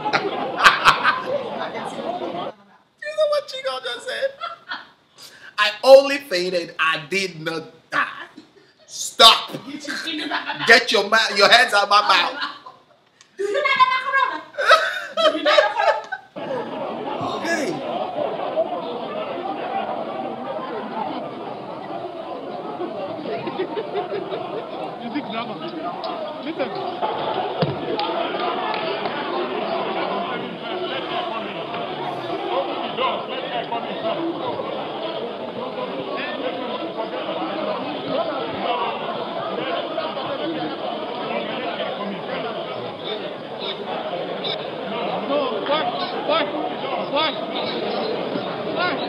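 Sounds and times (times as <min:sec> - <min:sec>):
many people talking: 0:00.0 - 0:49.0
man chuckling: 0:14.6 - 0:15.4, 0:16.4 - 0:17.8.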